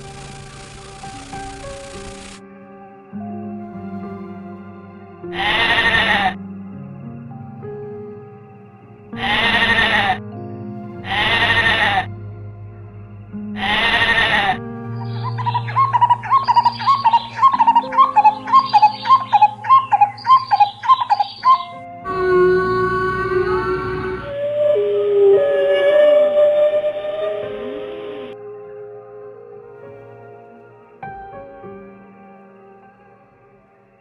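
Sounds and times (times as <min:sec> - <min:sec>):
background music: 0:00.0 - 0:34.0
sheep bleating: 0:05.3 - 0:06.4, 0:11.1 - 0:12.1, 0:13.6 - 0:14.6
droning tone: 0:10.2 - 0:30.3
bird chirping: 0:13.6 - 0:28.4.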